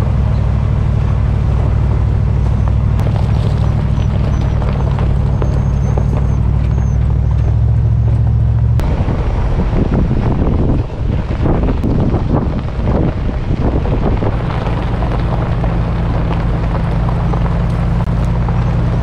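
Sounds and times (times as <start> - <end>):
rough rumble and rattle: 0.0 - 19.0
truck engine droning: 0.0 - 19.0.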